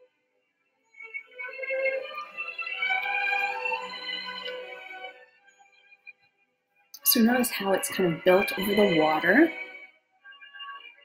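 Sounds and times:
music with sustained tones: 0.0s - 11.0s.

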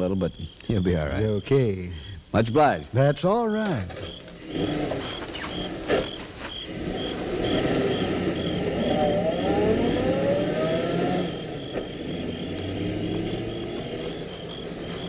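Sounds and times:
car engine accelerating: 3.9s - 15.0s.

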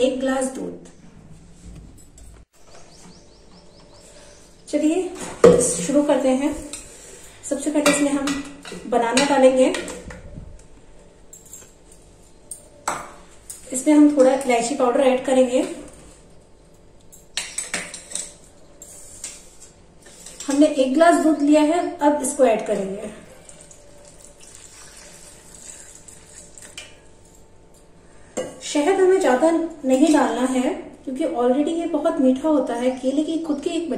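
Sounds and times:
milk pouring into jar: 23.5s - 26.8s.

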